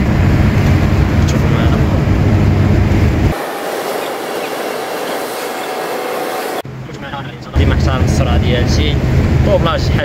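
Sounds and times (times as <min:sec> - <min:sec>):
truck diesel engine droning: 0:00.0 - 0:06.8
road and wind hiss: 0:00.0 - 0:10.0.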